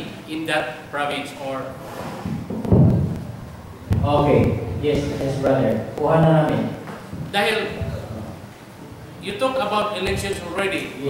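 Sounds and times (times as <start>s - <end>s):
low muffled thud and rumble: 2.2s - 5.6s.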